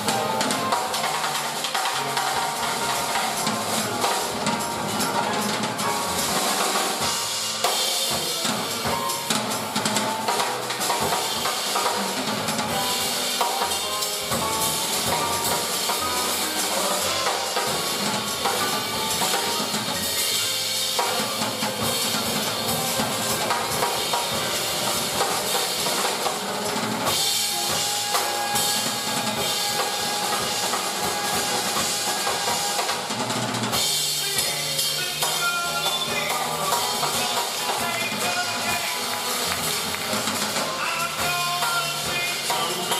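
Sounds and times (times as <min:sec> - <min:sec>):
jazz trio playing: 0:00.0 - 0:42.9
cymbal and snare strokes: 0:06.2 - 0:40.7.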